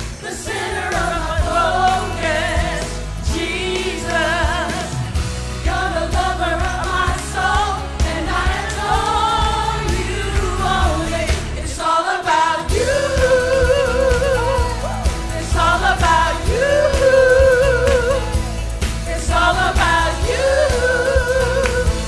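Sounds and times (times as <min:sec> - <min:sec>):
women singing with vibrato: 0:00.0 - 0:22.0
instrumental accompaniment: 0:12.6 - 0:22.0.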